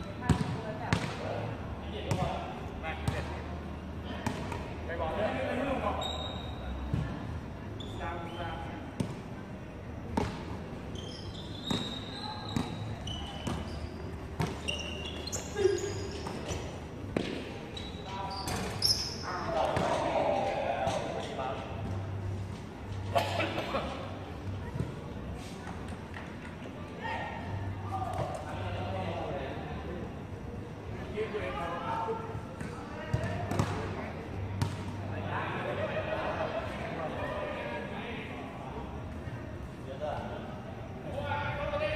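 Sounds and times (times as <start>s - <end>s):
sneakers squeaking: 0.0s - 1.2s, 5.9s - 9.2s, 10.1s - 20.1s, 32.6s - 35.0s
people talking: 22.9s - 41.9s
basketball bouncing on court: 33.1s - 33.8s.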